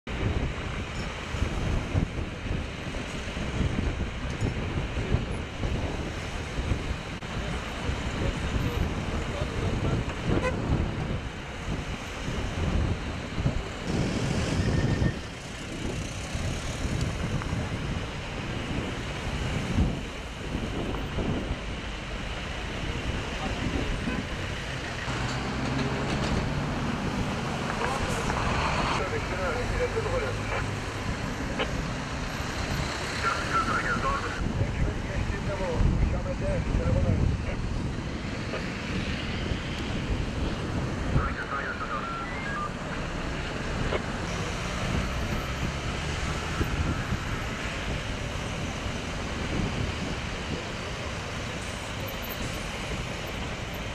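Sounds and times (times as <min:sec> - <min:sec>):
highway traffic passing: 0:00.1 - 0:53.9.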